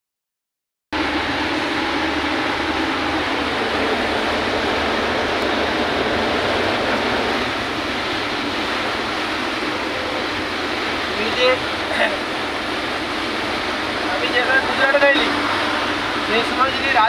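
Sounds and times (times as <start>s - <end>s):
engine and road drone: 0.9s - 17.0s
heavy rain and road spray: 1.0s - 17.0s.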